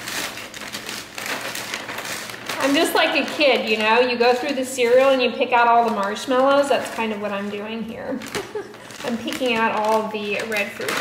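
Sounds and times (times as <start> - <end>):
frozen berries clicking: 0.0 - 11.0
plastic bag crinkling: 0.0 - 11.0.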